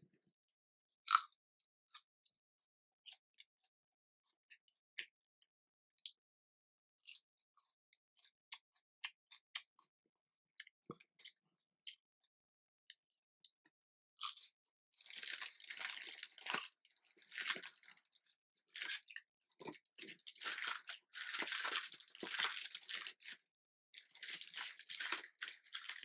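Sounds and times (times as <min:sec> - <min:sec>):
person chewing crunchy food: 0:01.1 - 0:01.4, 0:14.2 - 0:26.0.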